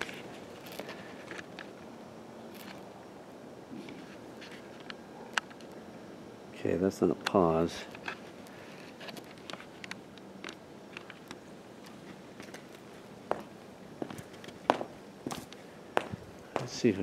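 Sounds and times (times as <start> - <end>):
footsteps on brick paving: 13.3 - 16.8.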